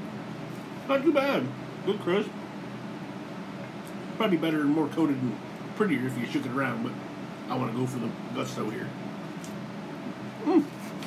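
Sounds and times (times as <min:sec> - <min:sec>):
steady low hum: 0:00.0 - 0:11.0
man's appreciative mmm: 0:10.4 - 0:10.9.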